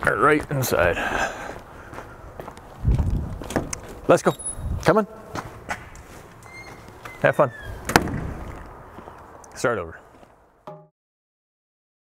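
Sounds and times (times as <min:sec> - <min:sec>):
footsteps on concrete: 0:00.0 - 0:04.1, 0:04.8 - 0:10.4
thin high squeak: 0:04.2 - 0:04.7, 0:06.4 - 0:07.8.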